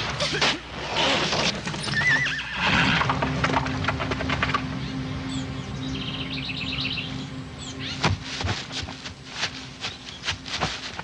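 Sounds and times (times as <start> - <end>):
horse whinnying: 0.9 - 3.1.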